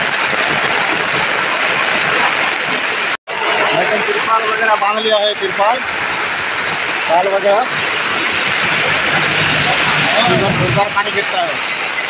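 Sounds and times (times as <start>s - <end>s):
heavy rain on a tarpaulin: 0.0s - 12.0s.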